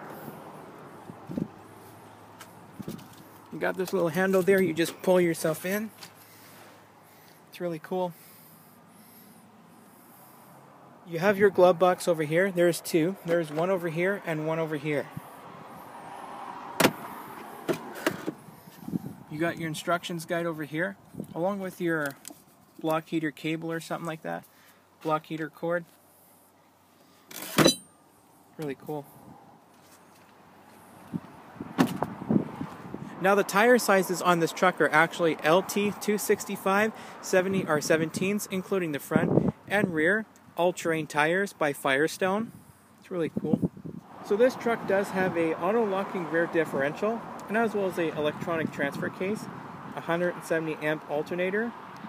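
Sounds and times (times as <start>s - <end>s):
light rustle: 1.3s - 7.4s, 29.0s - 31.3s
car door shutting: 16.8s - 18.4s, 31.6s - 32.2s.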